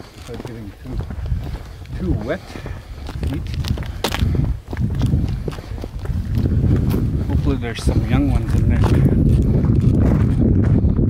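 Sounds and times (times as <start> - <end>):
footsteps on gravel: 0.0 - 11.0
steady low rumble: 0.0 - 11.0.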